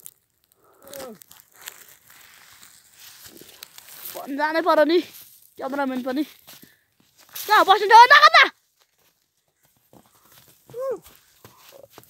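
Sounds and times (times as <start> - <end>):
footsteps crunching in snow: 1.1 - 12.0.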